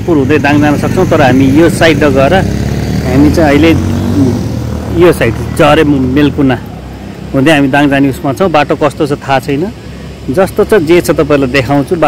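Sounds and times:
person talking: 0.0 - 6.7, 7.3 - 12.0.

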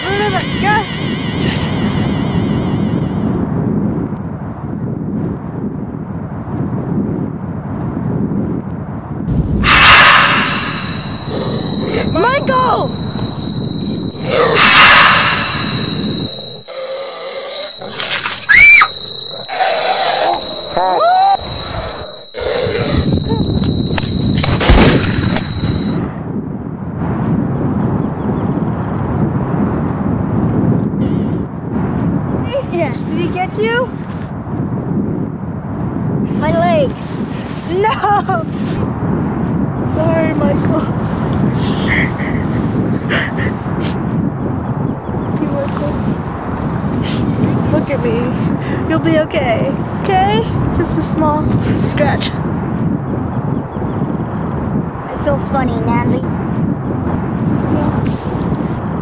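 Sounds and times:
high-pitched whine: 0.0 - 4.2, 9.3 - 26.2
wind buffeting microphone: 0.0 - 59.0
children shrieking and yelling: 16.7 - 21.6.

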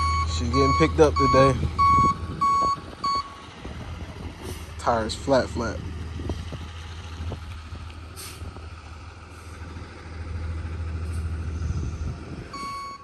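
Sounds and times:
truck engine running: 0.0 - 13.0.

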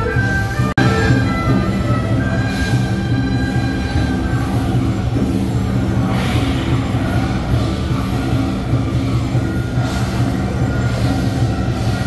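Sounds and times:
processional band melody: 0.0 - 12.0
steady drum beat: 0.0 - 12.0
cymbal crashes: 0.9 - 12.0.

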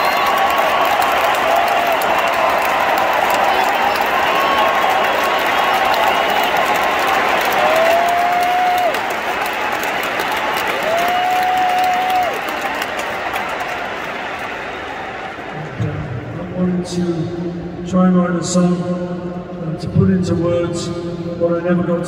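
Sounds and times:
long held tones from crowd: 0.0 - 9.0
stadium crowd applauding and cheering: 0.0 - 17.7.

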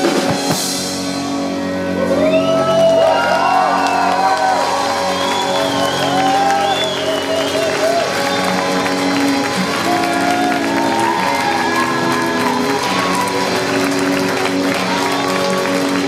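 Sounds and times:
live band music: 0.0 - 16.0
audience clapping: 2.2 - 16.0.

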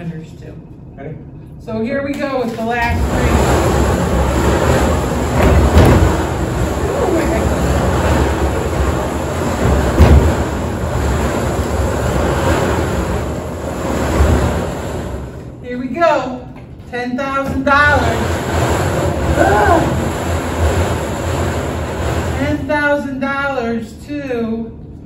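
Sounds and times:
tickets tumbling in drum: 3.0 - 14.7.

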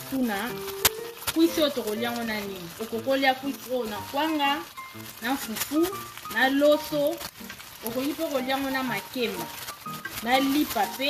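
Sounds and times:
background music: 0.0 - 11.0
food sizzling in a pan: 0.0 - 11.0
wooden spoon stirring in a pan: 0.0 - 11.0.

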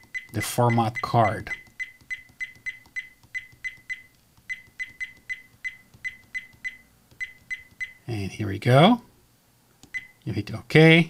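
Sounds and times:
dash cam high beeps: 0.0 - 8.1, 9.9 - 10.2.

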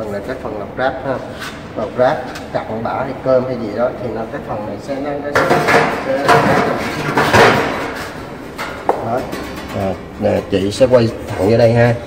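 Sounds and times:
metal scrape and clatter: 5.4 - 9.9.

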